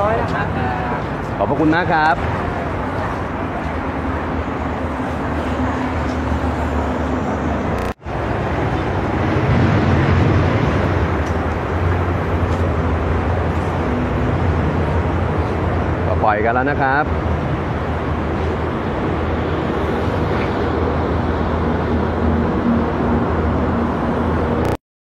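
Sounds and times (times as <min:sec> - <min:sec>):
outdoor traffic noise: 0:00.0 - 0:24.8.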